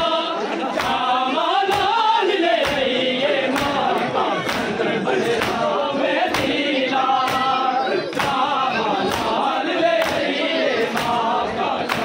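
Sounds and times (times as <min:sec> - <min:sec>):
men chanting in unison: 0:00.0 - 0:12.0
hands slapping bare chests: 0:00.8 - 0:01.1, 0:01.7 - 0:02.0, 0:02.6 - 0:02.9, 0:03.5 - 0:05.6, 0:06.3 - 0:06.6, 0:08.1 - 0:08.5, 0:09.1 - 0:09.4, 0:10.0 - 0:10.3, 0:10.9 - 0:11.2.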